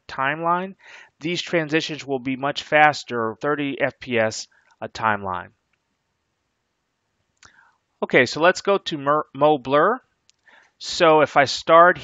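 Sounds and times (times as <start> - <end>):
faint room hiss: 0.0 - 12.0
faint breath: 0.8 - 1.2, 4.5 - 4.8, 7.4 - 7.9, 10.4 - 10.8.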